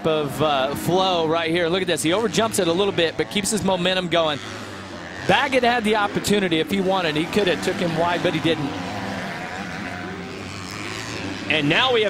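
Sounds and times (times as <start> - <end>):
motocross bike engines running: 0.0 - 12.0.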